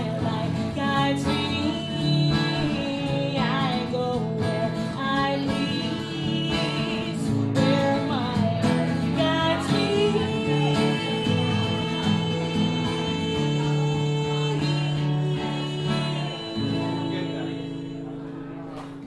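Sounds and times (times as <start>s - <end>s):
woman singing: 0.0s - 18.8s
strummed acoustic guitar: 0.0s - 19.0s.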